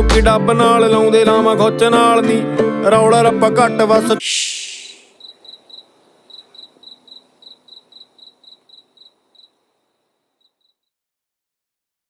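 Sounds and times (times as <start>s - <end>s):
cricket chirping: 4.4s - 10.9s.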